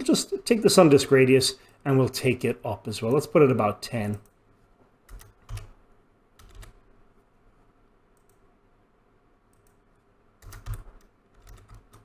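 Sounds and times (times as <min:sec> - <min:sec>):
computer keyboard keystrokes: 0:05.1 - 0:05.7, 0:06.4 - 0:06.8, 0:10.4 - 0:12.0.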